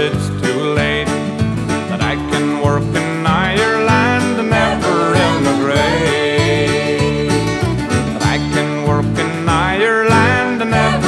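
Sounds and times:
country band instrumental: 0.0s - 11.0s
sliding lead melody: 0.0s - 11.0s.

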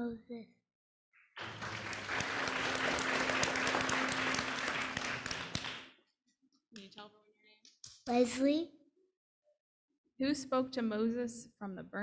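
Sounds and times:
audience applauding: 1.4s - 6.0s.

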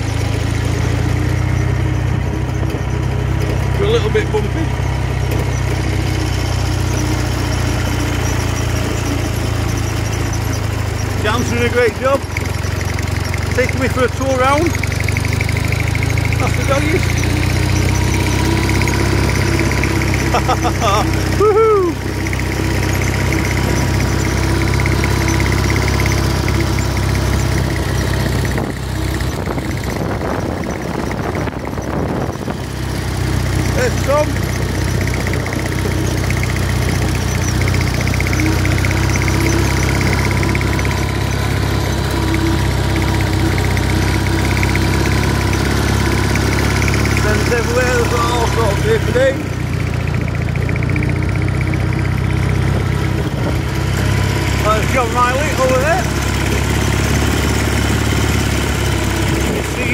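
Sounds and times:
vehicle engine drone: 0.0s - 59.9s.

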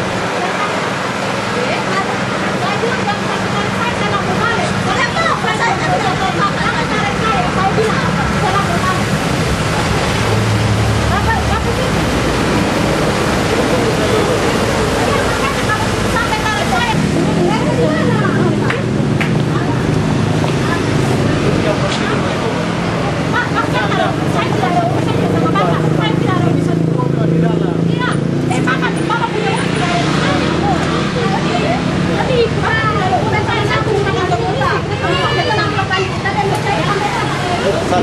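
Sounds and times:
loud rushing noise: 0.0s - 35.4s
faint voices: 0.0s - 38.0s.

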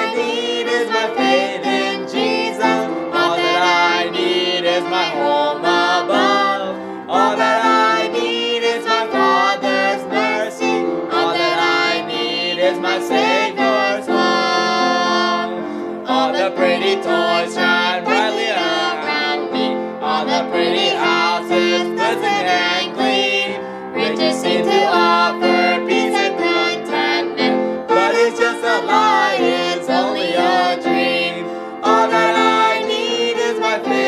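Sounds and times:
instrumental backing: 0.0s - 34.0s
man and woman singing: 0.0s - 34.0s.

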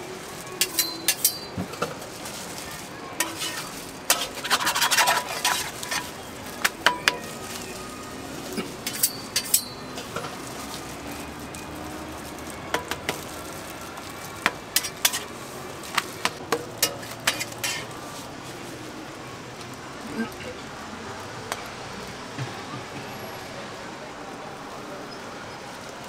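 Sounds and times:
low sizzle: 0.0s - 26.0s
metal spatula scraping griddle: 0.6s - 10.8s, 14.4s - 18.2s.

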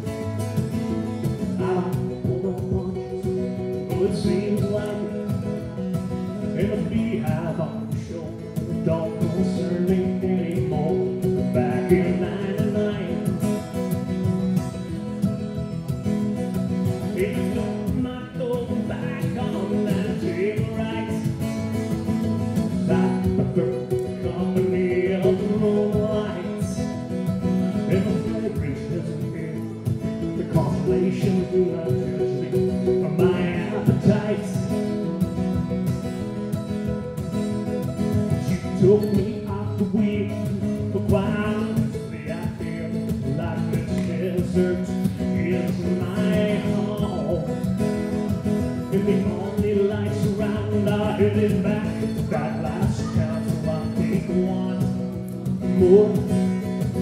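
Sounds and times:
man singing: 0.0s - 15.2s, 16.5s - 57.0s
acoustic guitar strumming: 0.0s - 57.0s
mandolin picking: 0.0s - 57.0s.

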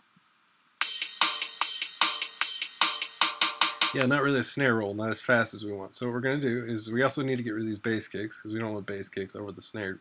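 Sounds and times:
snare drum hits: 0.8s - 4.0s
hi-hat: 0.8s - 4.1s.

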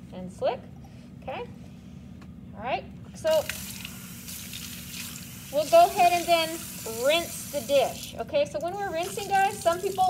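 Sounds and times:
water running from faucet: 3.3s - 8.2s, 8.8s - 10.0s.

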